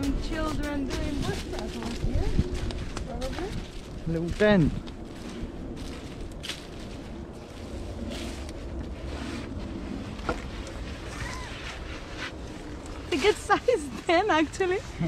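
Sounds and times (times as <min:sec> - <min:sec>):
footsteps on dry leaves and twigs: 0:00.0 - 0:14.8
wind buffeting microphone: 0:00.0 - 0:15.0.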